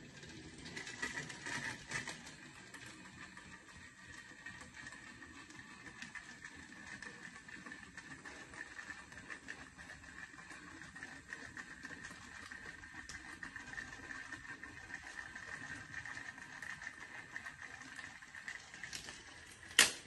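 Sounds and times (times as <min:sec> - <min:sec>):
toy train motor whine: 0:00.0 - 0:19.7.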